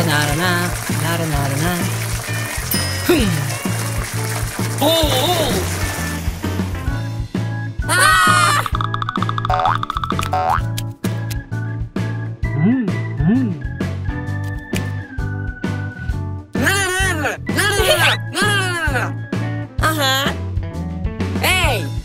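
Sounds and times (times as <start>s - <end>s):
garden hose spraying: 0.0s - 6.8s
upbeat cartoon music: 0.0s - 22.0s
springy boing sound effect: 8.6s - 10.6s.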